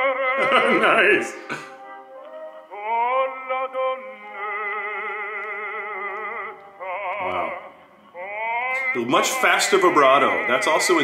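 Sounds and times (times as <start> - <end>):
operatic baritone singing: 2.3 - 11.0.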